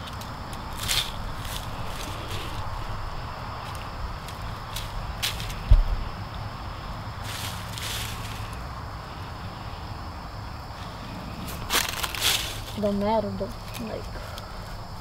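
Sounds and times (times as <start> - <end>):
steady low rumble: 0.0 - 15.0
dull thump: 5.2 - 6.0.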